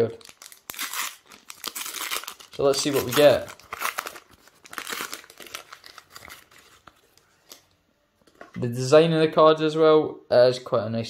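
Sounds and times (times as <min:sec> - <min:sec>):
plastic wrapper crinkling and tearing: 0:00.0 - 0:08.4.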